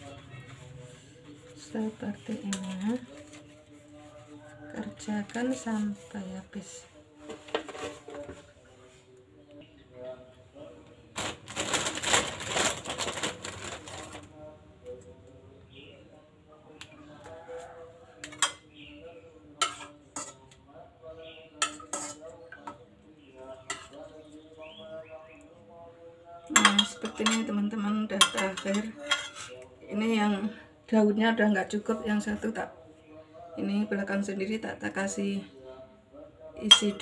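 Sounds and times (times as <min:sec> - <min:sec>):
leaf parcels rustling: 0:11.1 - 0:14.3
metal spoon clinking on pot: 0:18.2 - 0:18.7, 0:19.6 - 0:20.6, 0:21.6 - 0:22.8, 0:26.5 - 0:29.6, 0:36.6 - 0:37.0.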